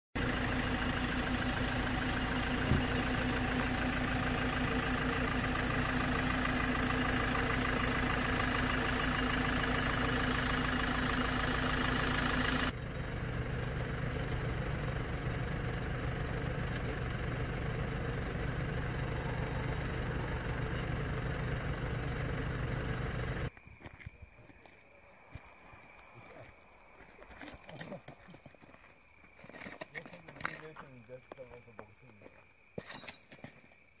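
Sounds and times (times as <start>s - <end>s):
van engine idling: 0.2s - 23.5s
low engine hum: 0.2s - 23.6s.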